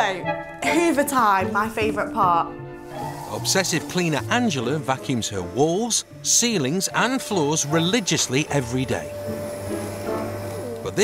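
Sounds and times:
vacuum cleaner running: 7.4s - 11.0s.

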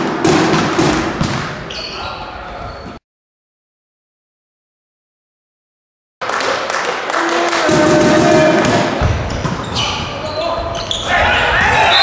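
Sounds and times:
sharp knocks in sports hall: 0.0s - 1.7s, 7.6s - 10.0s
players' voices: 7.2s - 12.0s.

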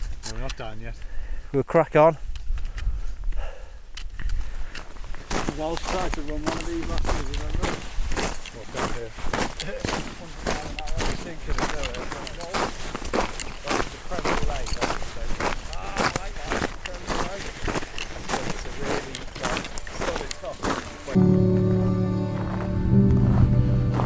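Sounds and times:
boots crunching through snow: 5.0s - 21.2s.

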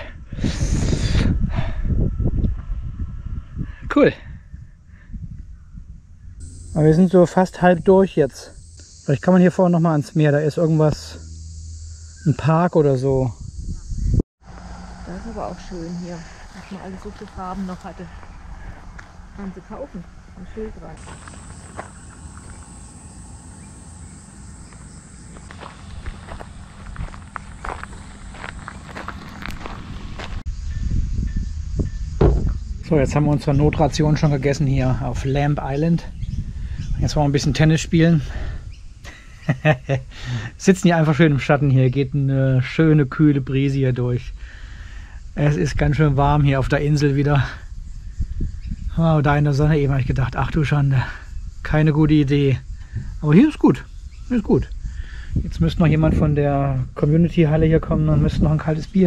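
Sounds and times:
steady low rumble: 0.0s - 3.8s, 10.3s - 40.8s
wind buffeting microphone: 0.0s - 6.6s, 13.0s - 39.0s, 45.2s - 59.0s
footsteps outdoors: 14.4s - 30.9s
breathy exhale: 40.1s - 40.6s, 44.4s - 45.3s, 54.8s - 55.4s.

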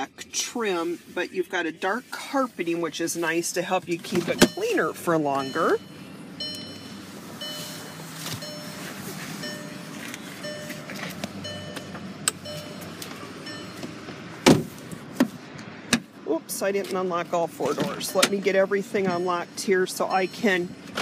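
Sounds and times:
car warning chime: 3.6s - 14.2s, 17.9s - 20.9s.

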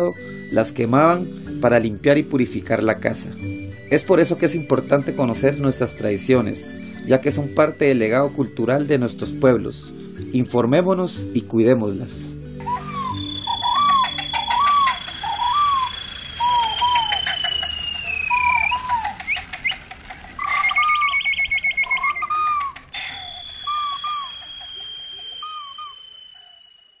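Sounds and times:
bird-like chirps: 12.6s - 27.0s
high whistle sliding down: 12.7s - 27.0s
rapid clicking: 13.4s - 26.7s.

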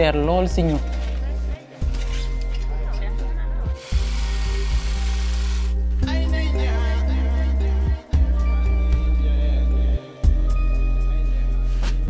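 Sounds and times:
background music: 0.0s - 12.0s
bag-closing sewing machine running: 3.8s - 5.8s.

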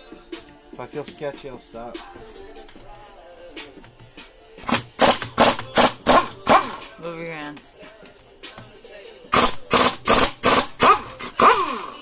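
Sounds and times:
background music: 0.0s - 12.0s
pneumatic impact wrench hammering: 4.6s - 6.9s, 9.3s - 12.0s.

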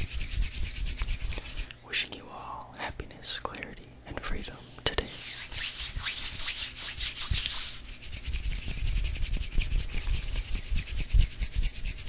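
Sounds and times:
hands rubbing on microphone: 0.0s - 1.7s, 4.9s - 12.0s.

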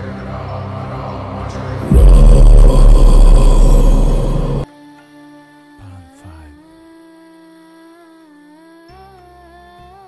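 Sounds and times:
person singing long bending note: 1.8s - 4.9s.

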